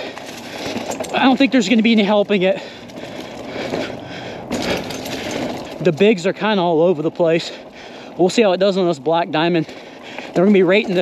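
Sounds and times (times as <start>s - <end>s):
bike rattling: 0.0s - 11.0s
bike tyre on dirt and leaves: 0.0s - 11.0s.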